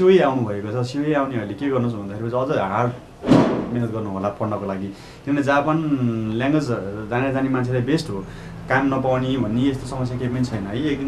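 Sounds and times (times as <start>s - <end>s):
man talking: 0.0s - 3.0s, 3.7s - 11.0s
sudden short burst of noise: 3.2s - 3.8s.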